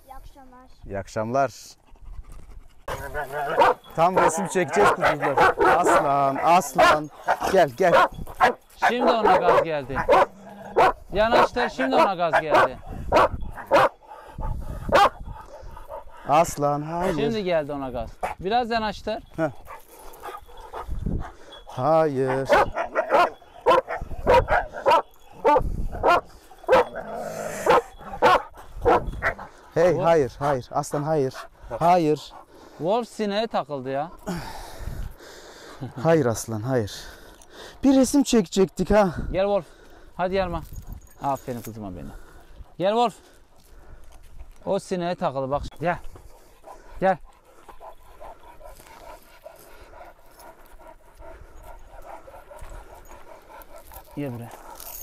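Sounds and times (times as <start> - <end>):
dogs panting: 1.5 - 55.0
dog barking sharply: 3.5 - 13.9, 14.9 - 15.2, 22.3 - 26.9, 27.6 - 29.4.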